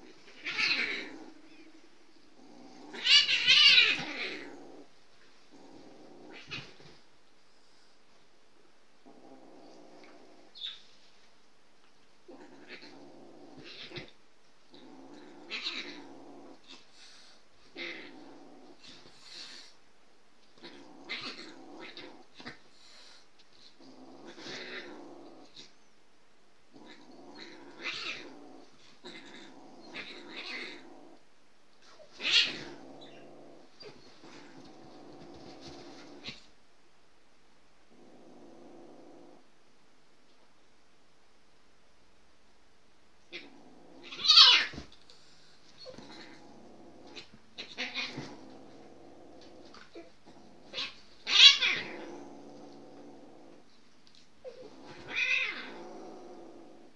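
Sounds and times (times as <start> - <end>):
cat growling yowl: 0.0 - 1.8, 2.4 - 4.9, 12.3 - 19.8, 20.6 - 22.7, 23.8 - 25.7, 26.7 - 31.2, 31.8 - 36.5, 43.3 - 45.0, 45.8 - 53.6, 54.4 - 56.9.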